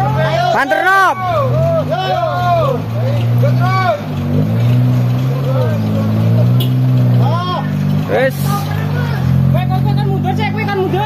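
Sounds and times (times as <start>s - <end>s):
men shouting: 0.0s - 4.1s, 7.2s - 11.0s
car engine revving: 0.0s - 11.0s.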